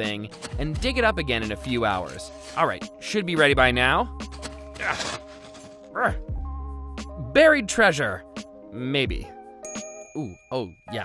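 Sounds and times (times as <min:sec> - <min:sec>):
metal shovel scraping dirt: 0:00.0 - 0:00.8, 0:01.5 - 0:02.9, 0:04.2 - 0:05.9
background music with held notes: 0:00.0 - 0:11.0.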